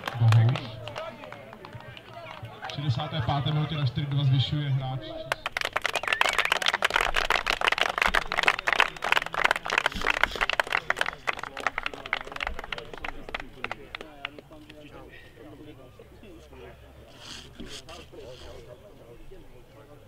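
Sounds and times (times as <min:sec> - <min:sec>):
people clapping: 0:00.0 - 0:02.9, 0:05.2 - 0:14.9.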